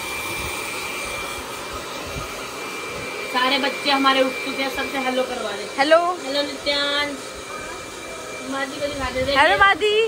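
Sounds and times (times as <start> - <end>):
hair dryer blowing air: 0.0 - 10.0
high fan whine: 0.0 - 10.0.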